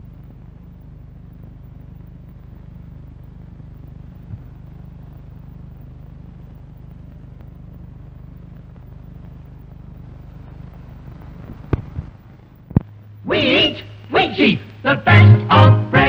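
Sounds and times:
low hum with faint hiss: 0.0 - 16.0.

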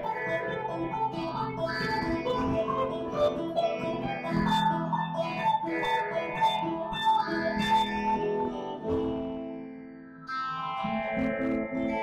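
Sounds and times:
guitar duet: 0.0 - 12.0.

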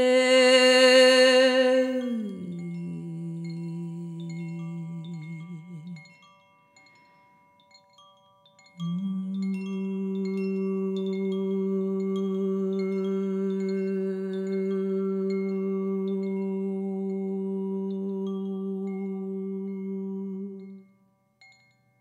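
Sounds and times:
woman's wordless voice: 0.0 - 6.2
chime tinkling: 1.6 - 22.0.

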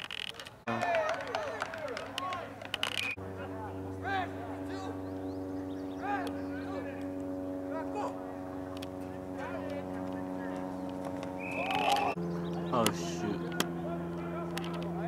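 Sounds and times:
distant players shouting: 0.7 - 15.0
steady machine hum: 3.0 - 15.0.

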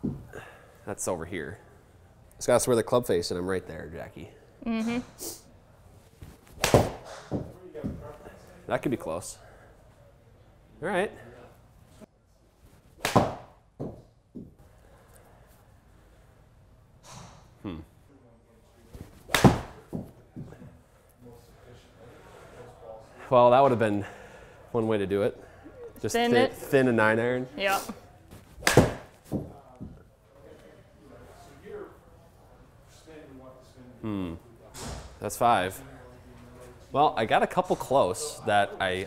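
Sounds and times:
ball smacking into screen: 13.0 - 13.5, 19.3 - 19.8, 28.6 - 29.5.

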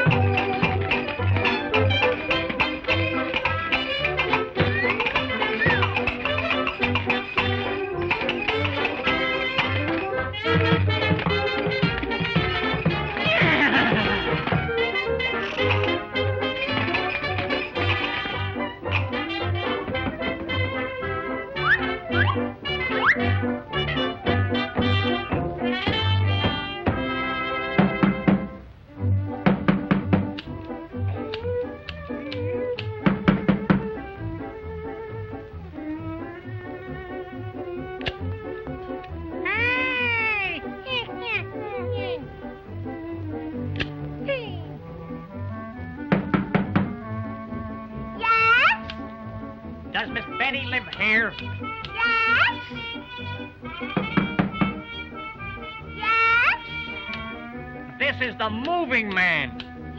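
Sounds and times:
cartoon band music: 0.0 - 59.9
knocks on wooden door: 24.8 - 28.6, 29.3 - 30.4, 33.0 - 34.0, 46.0 - 47.0, 53.8 - 54.9.

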